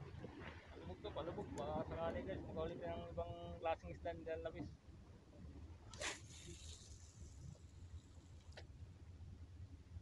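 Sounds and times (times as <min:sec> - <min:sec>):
fishing rod swish: 0:05.9 - 0:07.4
fishing line hissing off reel: 0:05.9 - 0:08.3.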